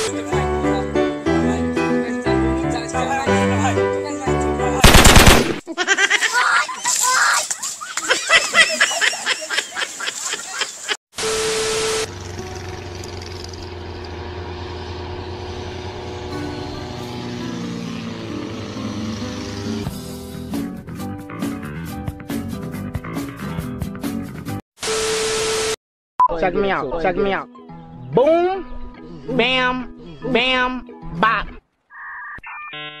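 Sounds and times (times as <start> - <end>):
loud burst: 4.8 - 5.6
rapid repeated cracks: 4.8 - 5.6.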